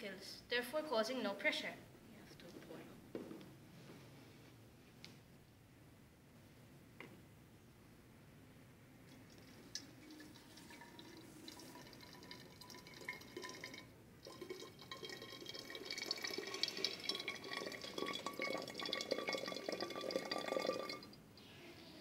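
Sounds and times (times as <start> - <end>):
water pouring into glass bottle: 9.1 - 21.2.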